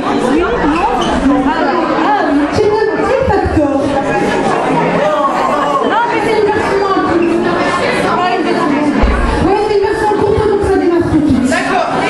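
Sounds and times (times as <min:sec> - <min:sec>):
crowd babble in hall: 0:00.0 - 0:12.0.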